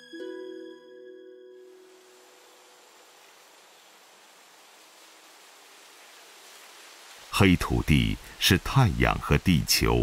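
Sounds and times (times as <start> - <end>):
faint steady hiss: 1.6 - 10.0.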